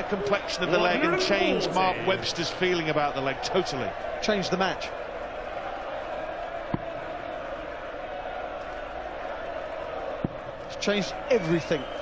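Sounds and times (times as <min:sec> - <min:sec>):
murmur of arena crowd: 0:00.0 - 0:12.0.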